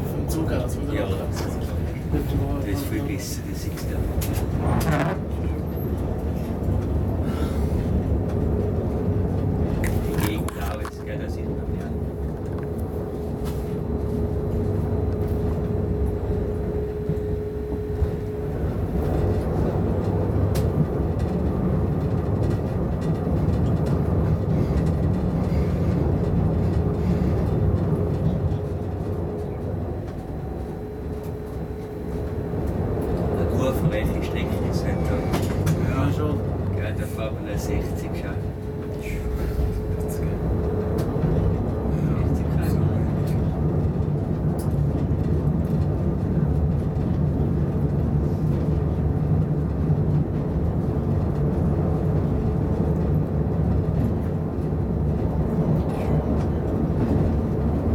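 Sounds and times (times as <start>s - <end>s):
locomotive hum: 0.0s - 57.9s
wheels rumbling on rails: 0.0s - 57.9s.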